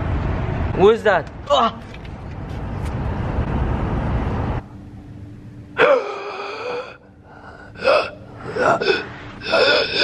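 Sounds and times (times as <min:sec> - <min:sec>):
person gasping: 0:05.8 - 0:10.0
person groaning: 0:05.8 - 0:10.0.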